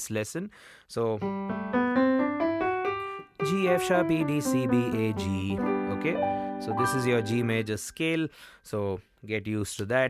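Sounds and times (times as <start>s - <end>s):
digital keyboard piano scale: 1.2s - 8.3s.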